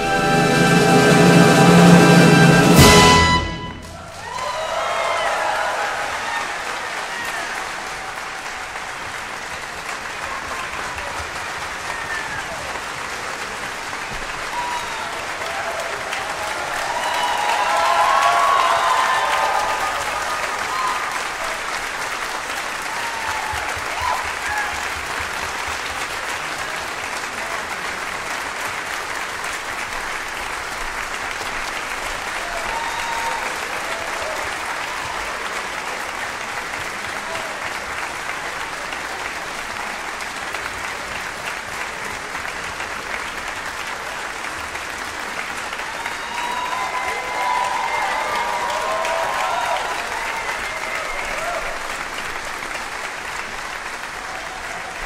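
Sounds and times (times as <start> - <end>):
audience applause: 0.0 - 55.0.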